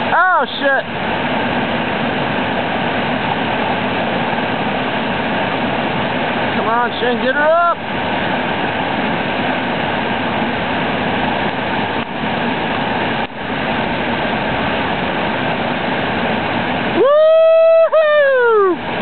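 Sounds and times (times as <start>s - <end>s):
river rapids roaring: 0.0s - 19.0s
person yelling: 0.1s - 0.5s, 17.0s - 18.8s.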